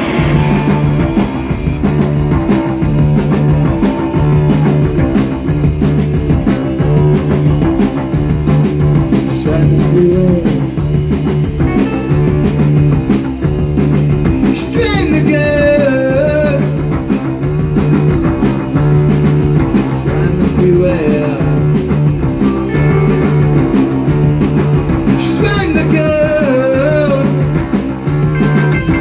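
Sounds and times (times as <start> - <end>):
drumbeat with cymbals: 0.0 - 29.0
electric bass: 0.0 - 29.0
electric guitar: 0.0 - 29.0.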